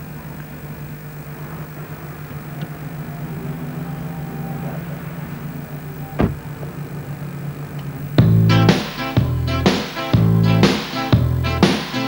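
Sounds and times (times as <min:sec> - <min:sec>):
car engine idling: 0:00.0 - 0:11.9
car door shutting: 0:02.3 - 0:08.2.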